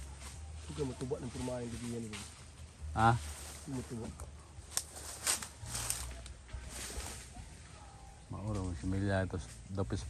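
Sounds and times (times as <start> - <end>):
grass and brush rustling: 0.0 - 10.0.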